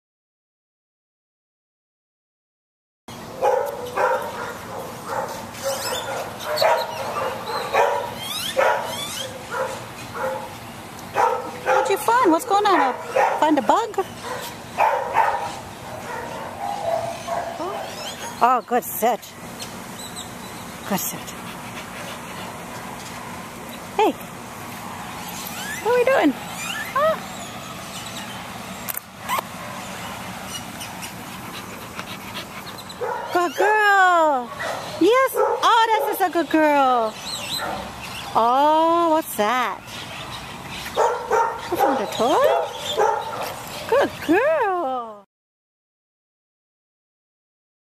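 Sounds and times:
dog barking: 0:03.4 - 0:10.5, 0:11.2 - 0:13.6, 0:14.2 - 0:18.4, 0:33.0 - 0:33.4, 0:34.5 - 0:36.2, 0:40.9 - 0:43.6
high rising squeaks: 0:05.5 - 0:09.4, 0:25.2 - 0:28.5
dog panting softly: 0:21.0 - 0:23.0, 0:30.8 - 0:33.4.

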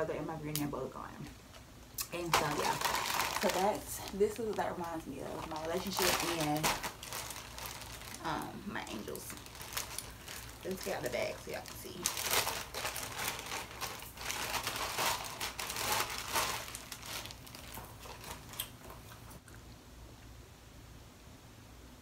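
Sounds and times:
plastic bag crinkling: 0:02.0 - 0:19.4.

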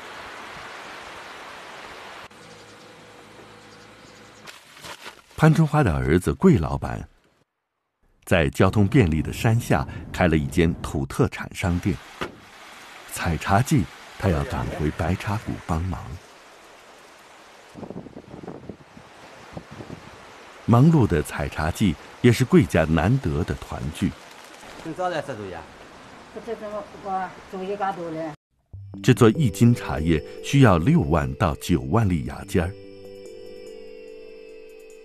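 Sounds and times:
light rain on foliage: 0:00.0 - 0:02.8, 0:11.6 - 0:18.0, 0:19.0 - 0:28.4
outdoor background hiss: 0:00.0 - 0:04.5, 0:11.1 - 0:28.4.

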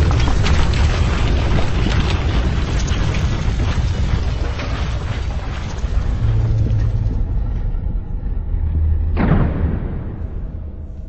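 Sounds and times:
deep rumbling drone with hiss: 0:05.8 - 0:11.0.

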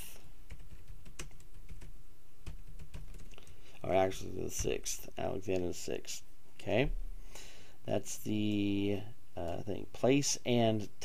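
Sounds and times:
keyboard typing: 0:00.5 - 0:03.4.

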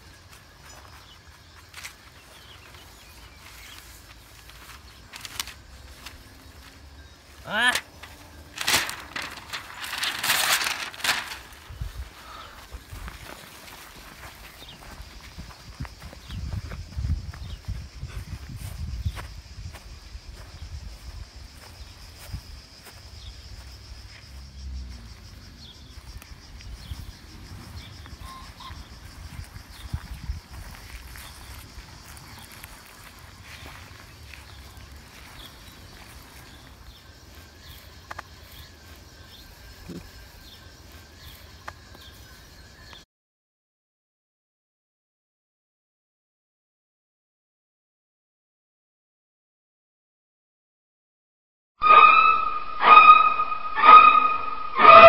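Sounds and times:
insects buzzing: 0:00.0 - 0:43.0
wind rumbling on microphone: 0:08.6 - 0:13.4, 0:14.4 - 0:37.8.

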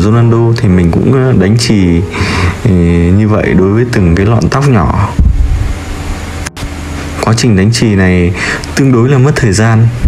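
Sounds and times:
steady rushing noise: 0:04.0 - 0:08.1.

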